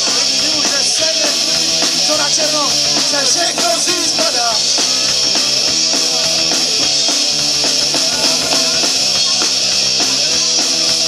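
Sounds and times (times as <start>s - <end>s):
drum kit: 0.0s - 11.0s
electric guitar: 0.0s - 11.0s.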